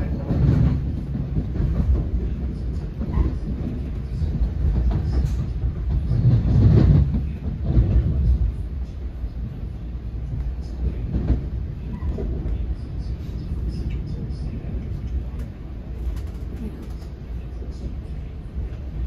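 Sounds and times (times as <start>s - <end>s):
rail clicks: 0.0s - 19.0s
train wheels rumbling on rails: 0.0s - 19.0s.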